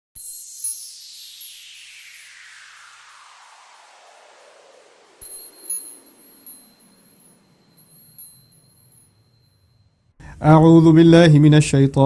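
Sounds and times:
high sparkling chime tinkles: 0.2s - 3.4s, 5.2s - 10.1s.

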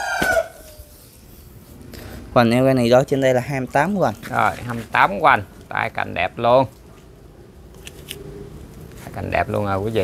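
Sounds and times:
rooster crowing: 0.0s - 1.0s.

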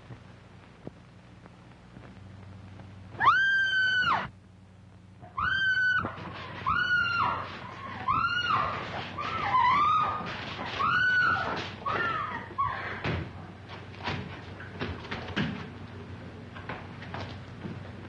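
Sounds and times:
woman screaming in terror: 3.2s - 4.3s, 5.3s - 13.0s.

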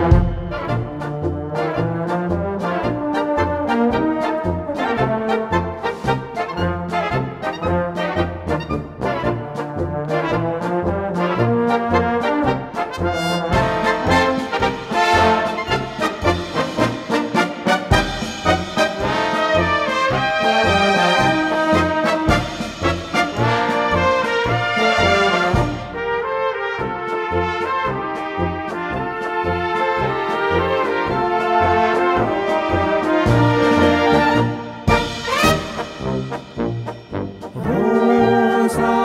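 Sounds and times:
brass band playing: 0.0s - 39.0s.

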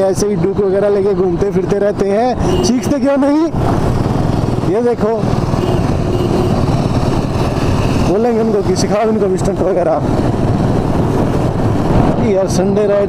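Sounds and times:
motorcycle engine running: 2.1s - 12.8s
wind rush over microphone: 3.5s - 13.0s.

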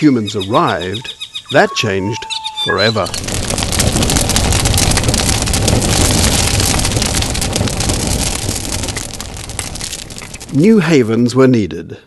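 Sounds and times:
loud crackling rushing noise: 2.7s - 11.1s.

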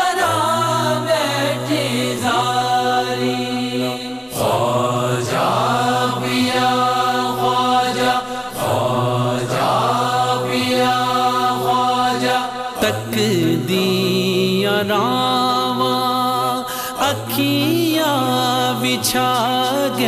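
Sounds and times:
devotional singing: 0.0s - 20.0s.

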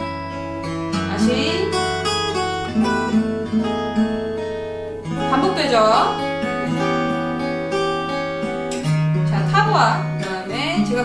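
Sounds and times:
fingerpicked acoustic guitar: 0.0s - 11.0s.

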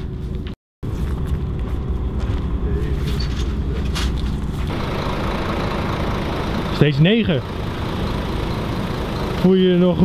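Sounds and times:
large engine idling: 1.8s - 10.0s.

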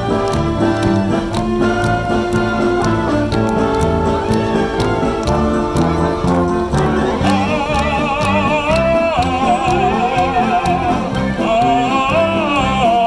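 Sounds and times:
brass band playing: 0.0s - 13.0s
steady drum beat: 0.0s - 13.0s.

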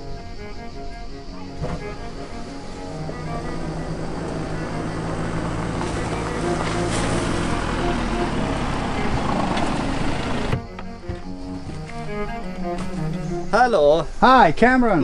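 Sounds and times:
car engine and road noise: 0.0s - 13.6s
background music: 0.0s - 15.0s.

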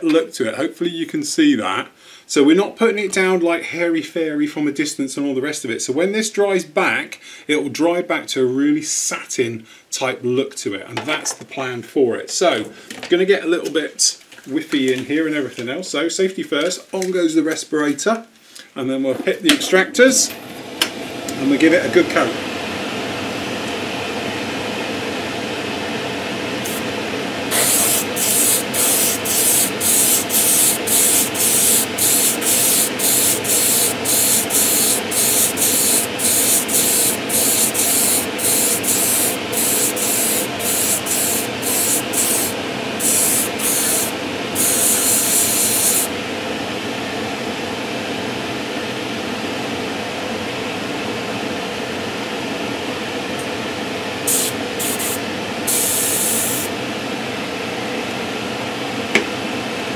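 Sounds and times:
extractor fan running: 20.2s - 59.9s
airbrush hissing bursts: 26.6s - 26.9s, 27.5s - 46.1s, 54.2s - 56.7s.

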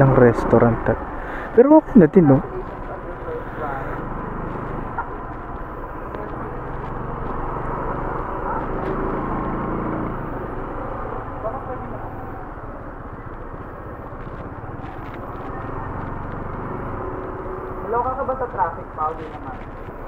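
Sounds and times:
scooter engines idling: 0.0s - 20.0s
voices talking: 0.0s - 20.0s.

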